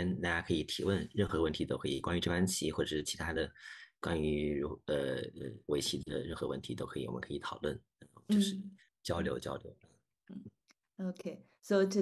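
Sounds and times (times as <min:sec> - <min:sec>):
man speaking over video call: 0:00.0 - 0:10.5.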